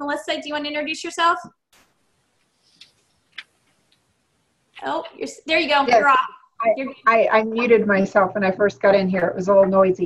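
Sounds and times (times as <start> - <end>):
faint line hiss: 1.7 - 7.1
faint clicks: 1.8 - 4.1.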